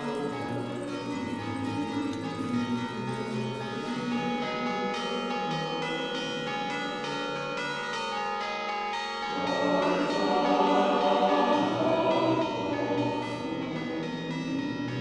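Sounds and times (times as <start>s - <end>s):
church bells ringing: 0.0s - 15.0s.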